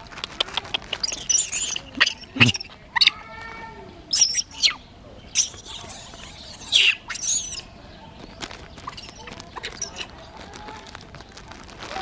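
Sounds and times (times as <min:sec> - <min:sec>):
monkeys squeaking and chirping: 0:00.2 - 0:03.2, 0:04.0 - 0:07.8, 0:08.4 - 0:10.2.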